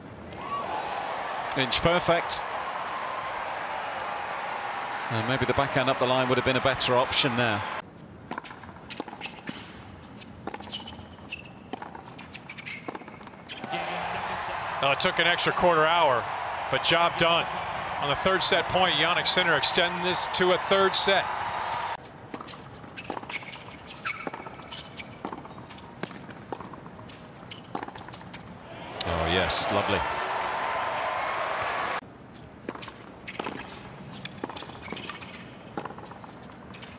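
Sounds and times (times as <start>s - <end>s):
tennis ball bouncing: 8.2s - 14.1s, 22.3s - 28.4s, 32.6s - 36.9s
shoe squeaks: 8.8s - 13.7s, 22.4s - 26.4s, 27.0s - 28.4s, 33.2s - 36.9s.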